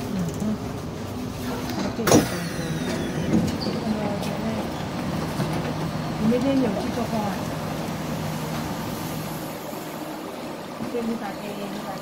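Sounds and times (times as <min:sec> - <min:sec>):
train carriage hum: 0:00.0 - 0:12.0.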